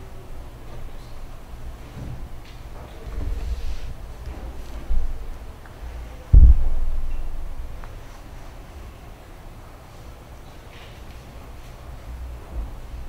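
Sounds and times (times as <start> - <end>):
dull thumps: 6.3 - 8.0
microphone handling rumble: 6.3 - 8.2.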